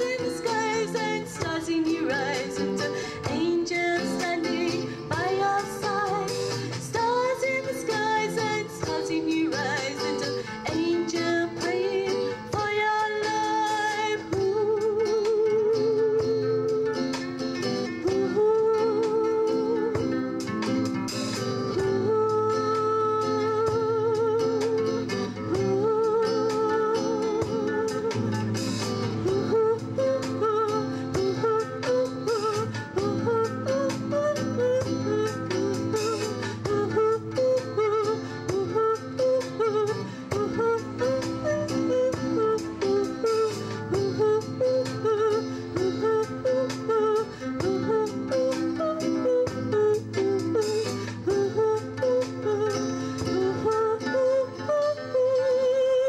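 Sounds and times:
strummed acoustic guitars: 0.0s - 56.0s
woman singing: 0.0s - 56.0s.

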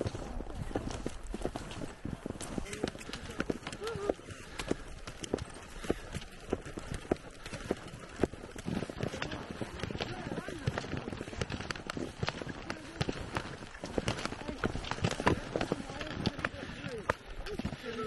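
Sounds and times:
ski poles and bindings clicking: 0.0s - 18.0s
skis swishing on snow: 0.0s - 18.0s.

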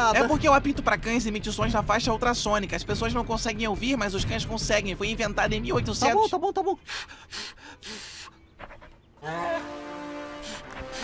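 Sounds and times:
breathy panting puffs: 6.8s - 9.0s, 10.2s - 11.0s.

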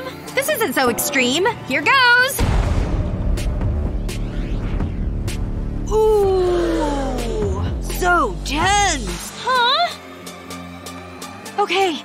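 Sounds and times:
throbbing suspense music drone: 0.8s - 9.9s.

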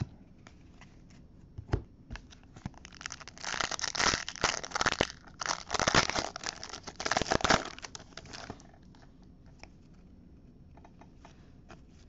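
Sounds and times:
foil wrapper tearing and crinkling: 2.8s - 8.6s.

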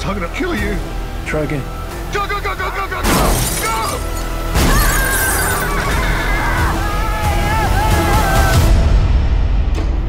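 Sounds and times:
music: 0.0s - 10.0s
glass shattering: 3.0s - 5.8s.

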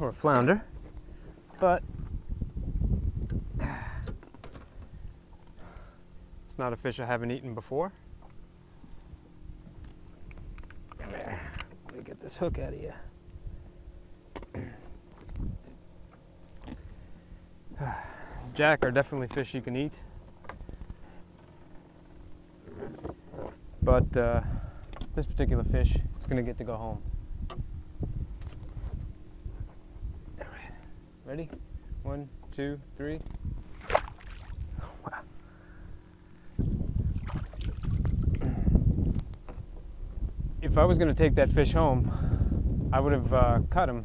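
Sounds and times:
wind rumble on microphone: 0.0s - 6.5s, 8.1s - 15.9s, 19.9s - 44.0s
muffled underwater hum: 0.1s - 40.6s
water moving around kayak: 37.0s - 38.4s.

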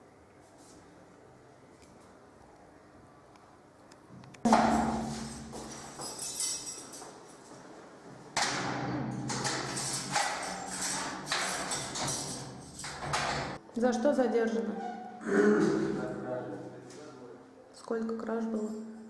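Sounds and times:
loud bang: 4.5s - 6.0s
keys rattling in cell door lock: 4.6s - 7.2s, 8.4s - 13.6s.

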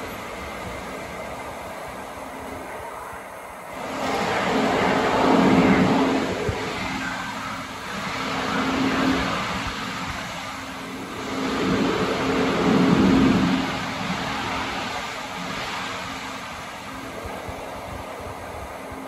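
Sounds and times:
train equipment humming: 0.0s - 19.0s
echoing rumble: 3.8s - 16.5s.

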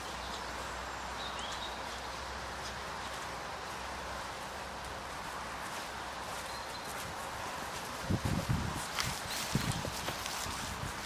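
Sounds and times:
outdoor hiss: 0.0s - 11.0s
footsteps on straw: 1.9s - 11.0s
light rustling: 4.8s - 11.0s.

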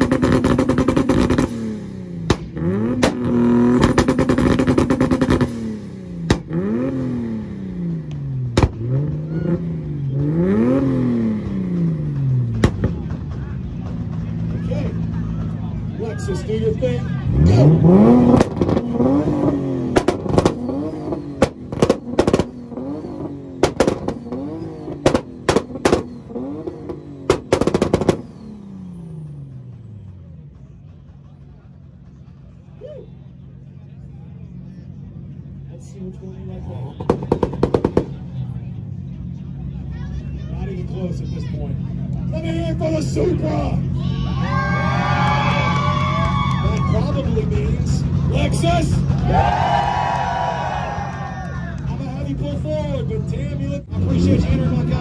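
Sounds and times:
exhaust backfire bangs: 0.0s - 15.8s, 17.2s - 32.7s, 36.5s - 39.7s
engines revving: 0.0s - 55.0s.

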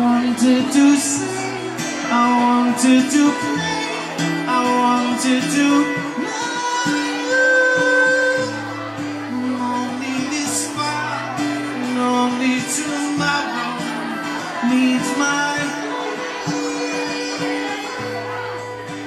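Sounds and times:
acoustic guitar: 0.0s - 19.0s
electric guitar: 0.0s - 19.0s
man singing: 0.0s - 19.0s.

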